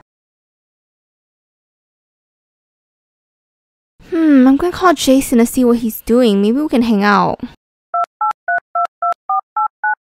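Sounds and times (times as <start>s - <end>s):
phone keypad dialing beeps: 8.0s - 10.0s.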